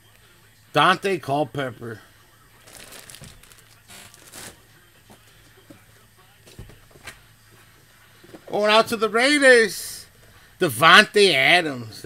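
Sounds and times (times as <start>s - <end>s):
plastic bag crinkling: 2.6s - 4.6s.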